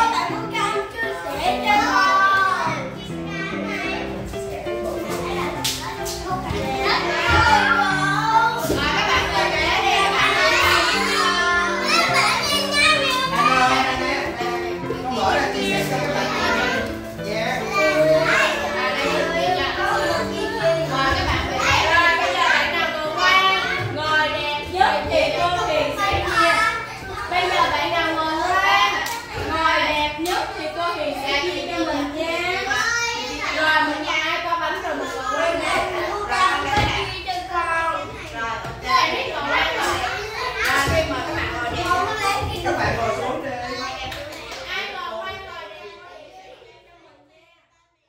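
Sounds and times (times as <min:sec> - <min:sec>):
young children chattering: 0:00.0 - 0:48.0.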